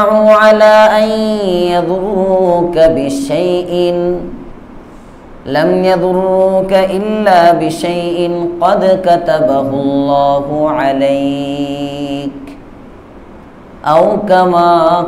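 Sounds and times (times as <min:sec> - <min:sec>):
man chanting melodic recitation: 0:00.0 - 0:04.4, 0:05.5 - 0:12.6, 0:13.8 - 0:15.0.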